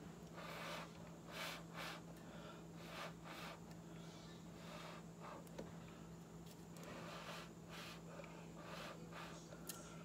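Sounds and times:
faint puffs of breath: 6.8 - 10.0.

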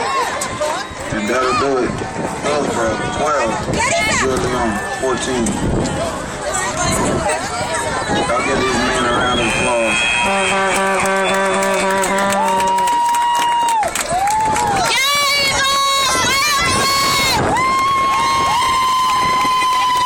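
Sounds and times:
crowd cheering: 0.0 - 20.0
drawn-out shouts: 7.6 - 20.0.

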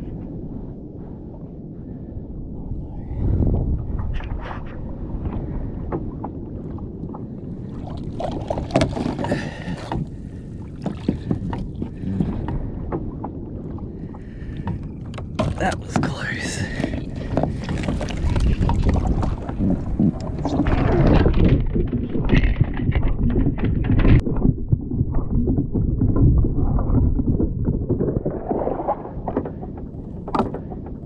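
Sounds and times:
knocks against kayak hull: 8.7 - 9.3.

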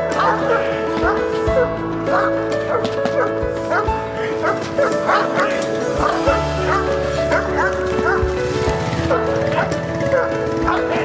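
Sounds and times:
background music: 0.0 - 11.0
dog barking aggressively: 0.1 - 11.0.

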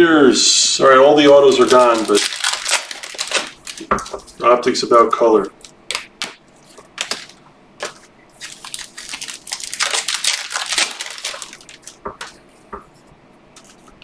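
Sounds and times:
cards swishing and scraping: 5.5 - 9.2, 10.8 - 14.0.

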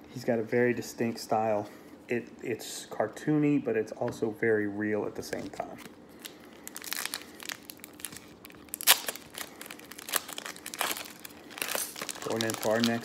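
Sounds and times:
foil wrapper crinkling and tearing: 5.4 - 13.0.

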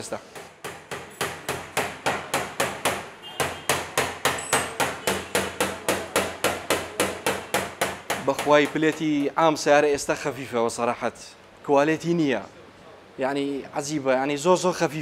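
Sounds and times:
hammer tapping car body panel: 0.3 - 9.3.

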